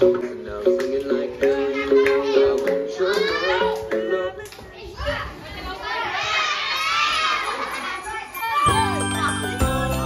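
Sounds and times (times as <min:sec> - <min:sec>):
children talking and shouting: 0:00.0 - 0:10.0.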